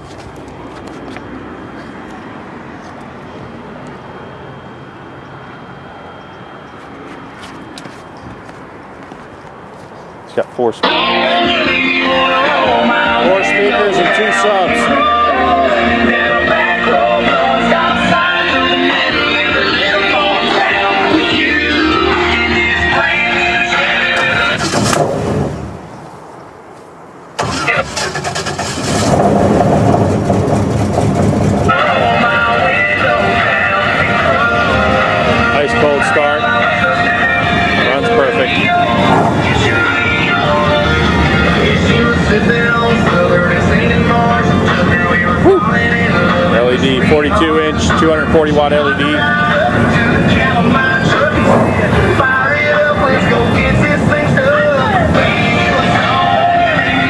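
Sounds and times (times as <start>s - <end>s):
music from stereo: 10.8s - 25.4s, 31.5s - 57.0s
airboat engine starting and running: 10.8s - 25.8s, 27.4s - 57.0s.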